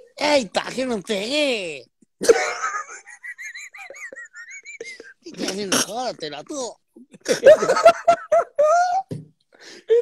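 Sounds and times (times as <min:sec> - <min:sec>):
man laughing in falsetto: 0:07.2 - 0:09.1.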